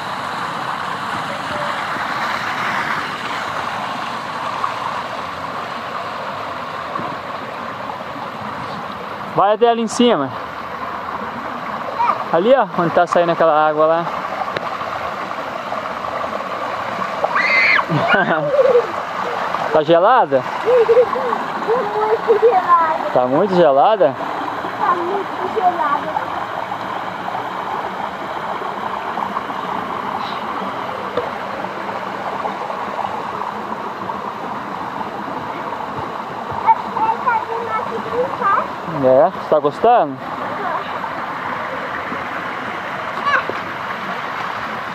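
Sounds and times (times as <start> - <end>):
water rushing down a channel: 0.0 - 44.9.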